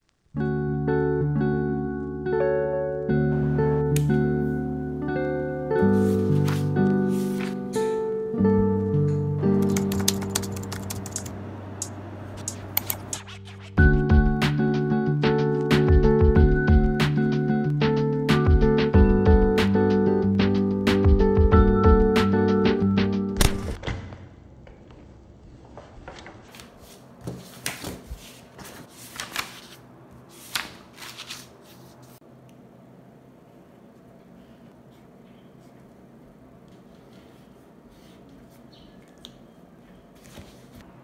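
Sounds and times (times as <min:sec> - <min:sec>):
background music with low chords: 0:00.4 - 0:10.4, 0:13.2 - 0:23.7
paper rustling: 0:05.8 - 0:07.9, 0:12.4 - 0:13.8, 0:25.8 - 0:32.2, 0:40.1 - 0:40.9
keyboard key clicks: 0:09.6 - 0:11.3.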